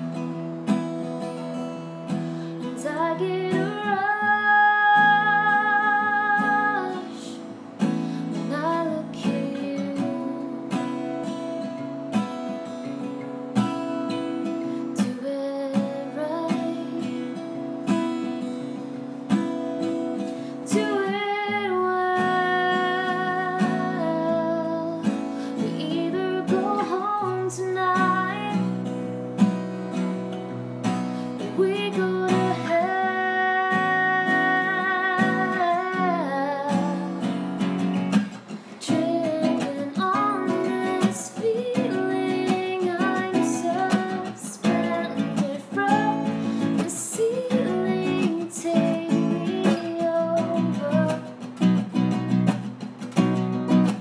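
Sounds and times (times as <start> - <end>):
strummed acoustic guitar: 0.0 - 54.0
woman singing: 2.6 - 11.9, 14.8 - 18.7, 20.2 - 28.9, 31.2 - 51.6.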